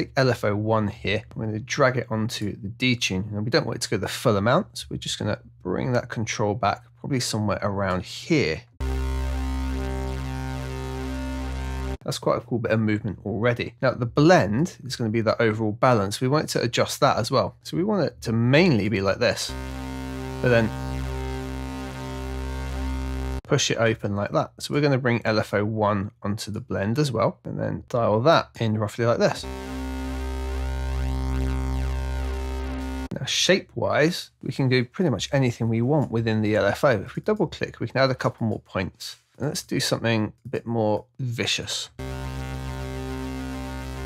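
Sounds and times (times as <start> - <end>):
low synth note: 8.8 - 12.0, 19.4 - 23.5, 29.3 - 33.2, 42.0 - 44.0.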